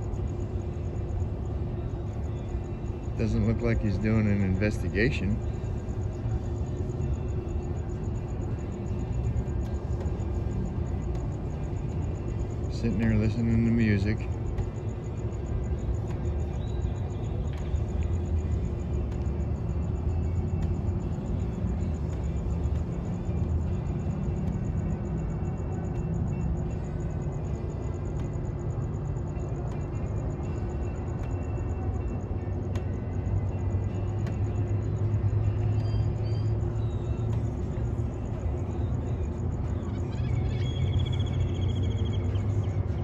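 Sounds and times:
music playing inside car: 0.0s - 43.0s.

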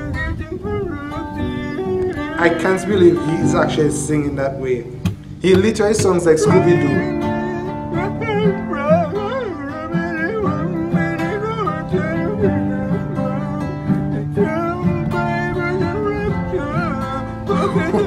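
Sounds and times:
man singing with warbling voice: 0.0s - 18.0s
plucked acoustic guitar: 0.0s - 18.0s.

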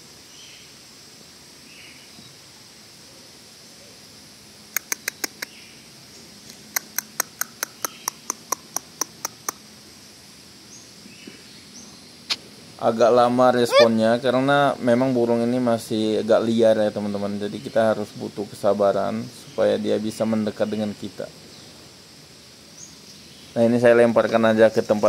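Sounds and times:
sharp clicks: 4.8s - 5.5s.

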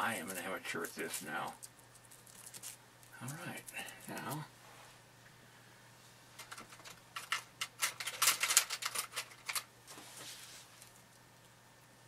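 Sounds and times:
plastic wrap crinkling: 0.1s - 4.4s.

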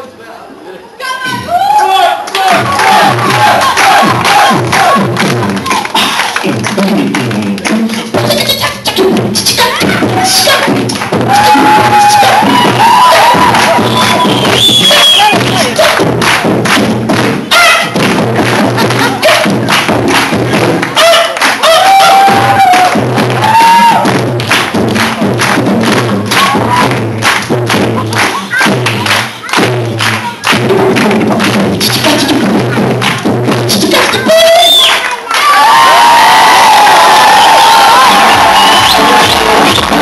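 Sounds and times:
beatboxing into a microphone: 2.5s - 35.2s, 38.0s - 40.0s.

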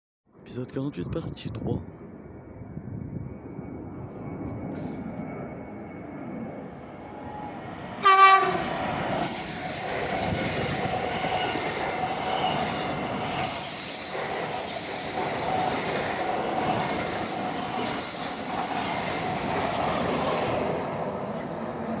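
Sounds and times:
train wheel and rail noise: 0.4s - 22.0s
train horn blast: 7.2s - 8.7s.

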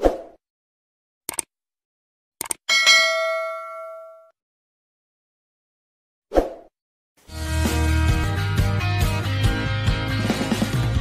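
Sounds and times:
notification bell chime: 2.7s - 4.3s.

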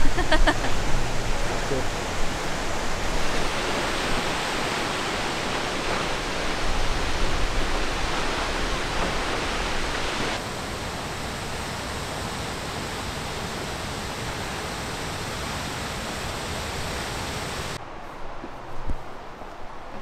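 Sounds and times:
waterfall rushing: 0.0s - 17.8s.

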